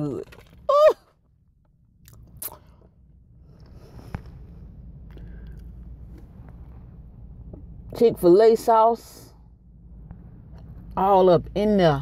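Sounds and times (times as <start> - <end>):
low rumble: 0.2 - 12.0.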